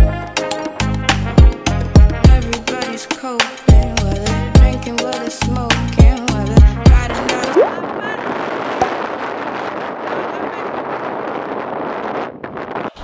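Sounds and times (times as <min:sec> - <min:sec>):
strong wind on microphone: 0:07.0 - 0:13.0.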